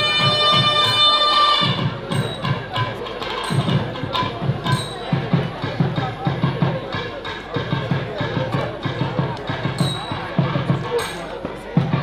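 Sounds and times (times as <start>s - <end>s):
deep drum strokes: 0.0s - 12.0s
sharp drum slaps: 0.0s - 12.0s.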